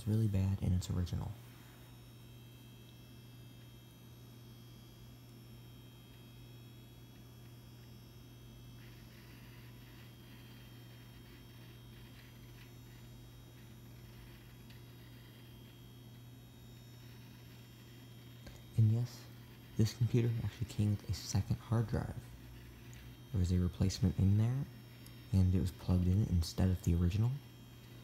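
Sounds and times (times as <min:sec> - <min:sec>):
computer fans and hard drive humming: 0:00.0 - 0:28.0
faint thin whines: 0:00.0 - 0:28.0
hard drive ticking: 0:01.9 - 0:28.0.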